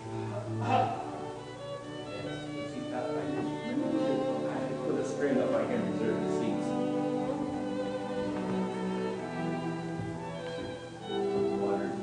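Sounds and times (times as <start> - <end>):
violin playing long held notes: 0.0 - 12.0.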